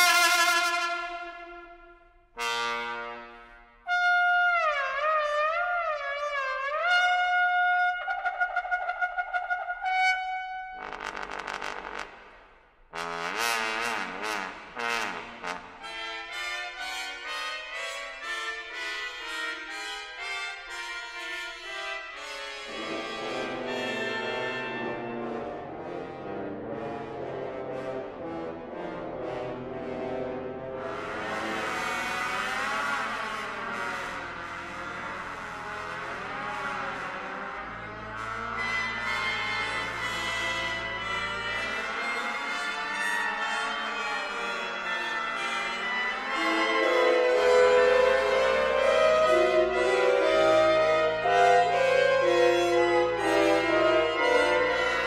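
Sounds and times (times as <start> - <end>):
brass chord: 0.0 - 55.0
brass with sliding pitches: 0.0 - 55.0
trombone and orchestra music: 0.0 - 55.0.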